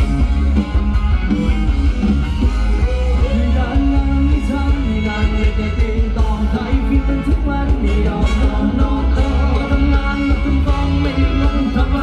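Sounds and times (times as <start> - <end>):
amplified dance band: 0.0 - 12.0
person singing: 2.6 - 12.0.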